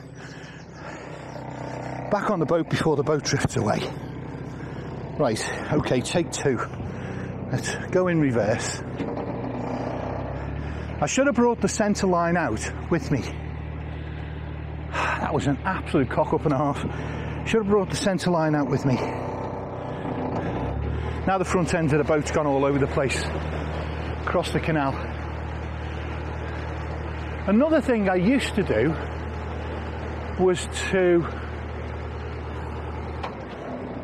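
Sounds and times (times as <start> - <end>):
boat engine low hum: 0.0 - 34.0.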